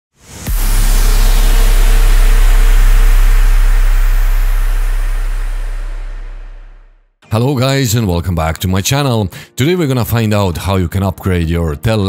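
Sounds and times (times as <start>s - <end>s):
deep cinematic boom: 0.2s - 7.2s.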